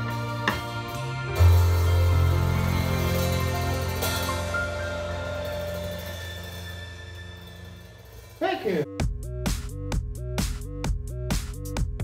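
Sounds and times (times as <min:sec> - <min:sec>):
cymbals ringing: 0:00.0 - 0:08.9.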